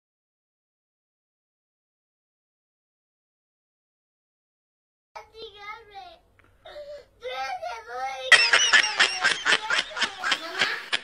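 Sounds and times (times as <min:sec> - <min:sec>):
child whimpering cry: 0:06.6 - 0:07.8.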